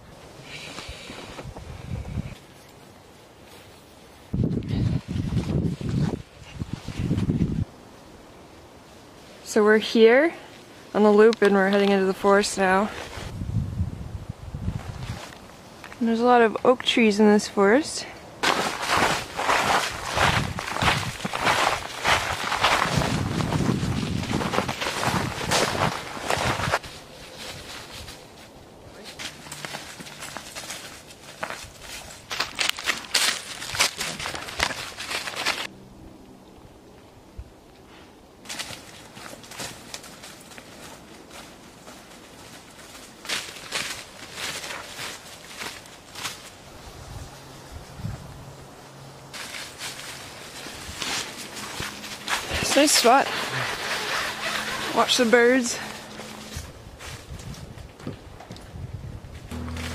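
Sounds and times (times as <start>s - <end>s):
footsteps crunching dry leaves: 18.4s - 35.7s, 38.5s - 47.4s, 49.3s - 57.8s.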